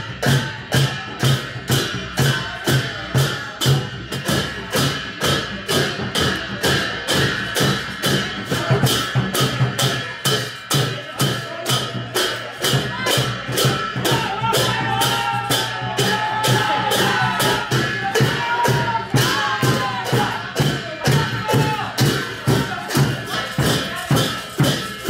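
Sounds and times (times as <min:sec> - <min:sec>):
barrel drum beats: 0:00.0 - 0:25.0
hand cymbal clashes: 0:00.0 - 0:25.0
voices: 0:00.0 - 0:25.0.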